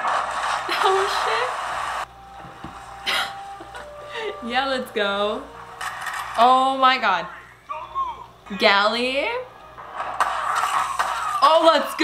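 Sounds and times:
woman sighing: 3.0 - 4.5.

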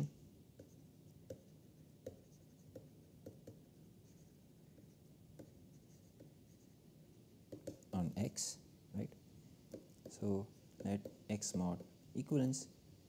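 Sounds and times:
stylus tapping and scratching: 0.0 - 6.8, 7.5 - 7.9, 9.7 - 12.3.

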